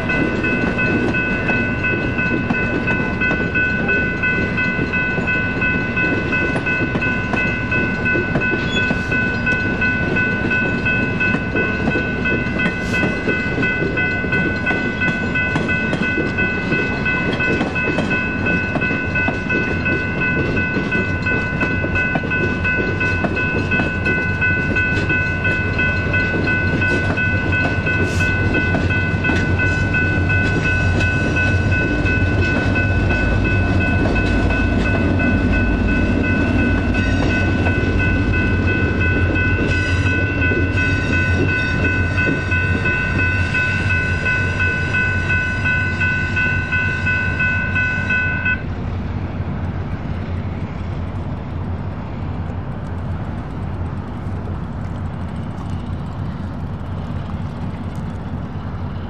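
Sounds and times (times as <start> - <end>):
locomotive rumble: 0.0 - 59.0
railroad crossing bells: 0.0 - 59.0
train cars clattering on track: 0.0 - 59.0.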